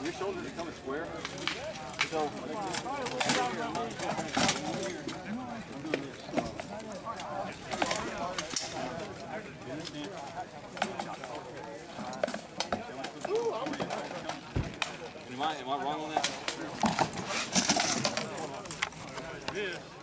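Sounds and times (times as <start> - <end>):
people talking indistinctly: 0.0 - 20.0.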